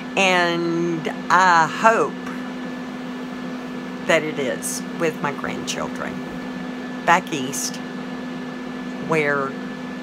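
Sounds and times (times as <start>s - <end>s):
low electric hum: 0.0s - 10.0s.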